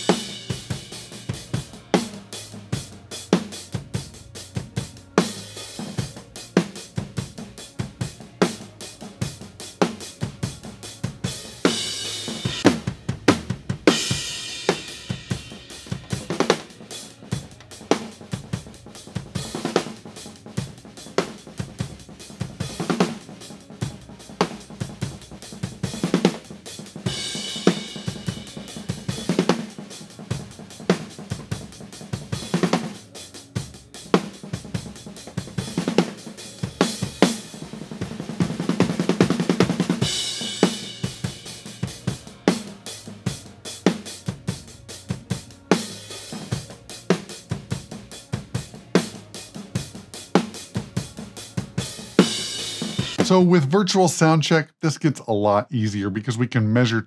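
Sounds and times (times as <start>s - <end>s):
drum kit groove: 0.0s - 57.0s
cymbal crashes: 13.9s - 16.7s.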